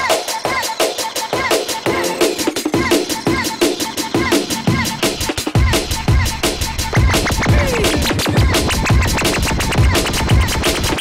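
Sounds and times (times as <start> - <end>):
fast chopped breakbeat: 0.0 - 11.0
vinyl scratching: 0.2 - 11.0.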